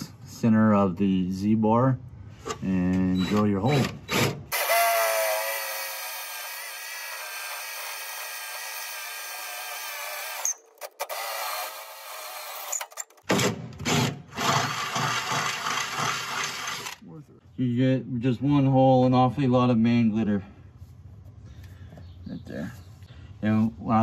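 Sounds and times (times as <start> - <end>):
cordless drill whining: 4.1 - 13.0, 14.3 - 17.0.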